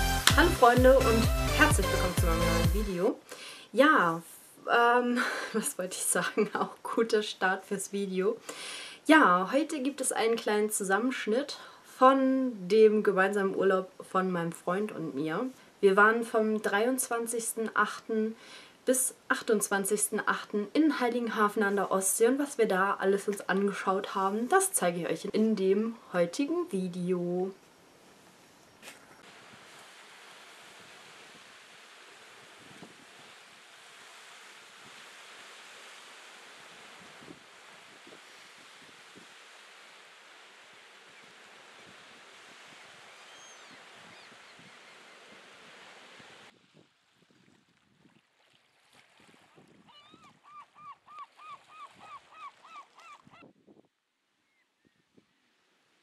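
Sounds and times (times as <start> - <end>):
small waves washing onto shore: 28.8 - 53.3
bird calling: 42.7 - 45.1, 49.9 - 53.5.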